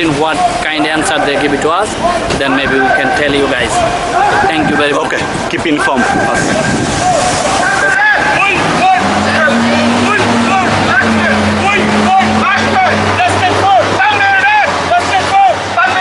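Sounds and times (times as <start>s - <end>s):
large vehicle engine humming: 0.0s - 16.0s
protesters shouting chants: 0.0s - 16.0s.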